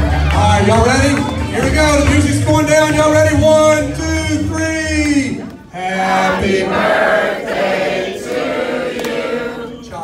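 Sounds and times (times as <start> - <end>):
group of people singing: 5.8 - 10.0.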